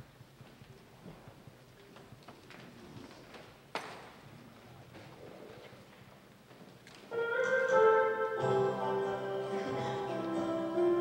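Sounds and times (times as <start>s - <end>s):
organ playing held chords: 7.2s - 11.0s.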